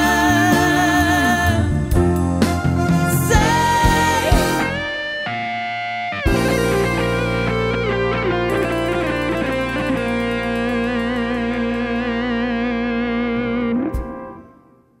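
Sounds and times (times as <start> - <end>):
guitar-led song: 0.0 - 15.0.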